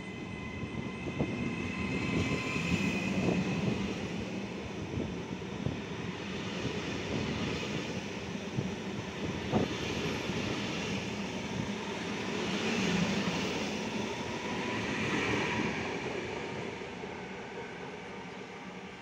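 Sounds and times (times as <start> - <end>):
train wheels rumbling on rail: 0.0 - 17.8.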